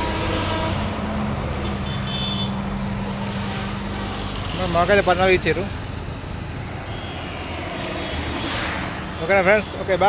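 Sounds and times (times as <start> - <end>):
vehicle horn: 0.0 - 1.0, 1.6 - 2.6
passing traffic engine and tyre noise: 0.0 - 10.0.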